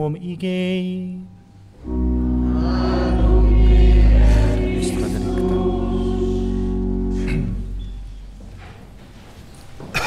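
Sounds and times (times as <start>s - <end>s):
church organ: 1.6s - 8.7s
congregation singing: 1.8s - 8.4s.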